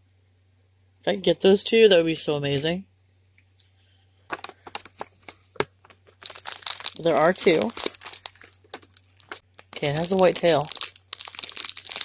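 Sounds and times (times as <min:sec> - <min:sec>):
foil bag tearing and crinkling: 0:06.1 - 0:12.0.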